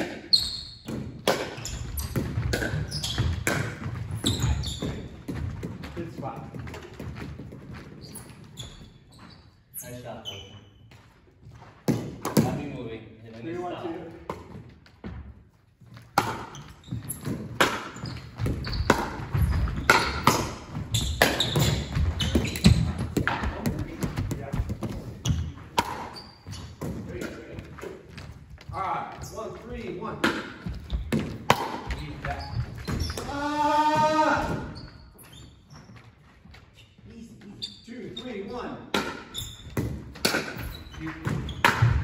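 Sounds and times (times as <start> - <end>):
ball bouncing: 0.8 - 8.4, 14.1 - 36.1, 38.9 - 42.0
paddles hitting plastic ball: 30.2 - 33.4.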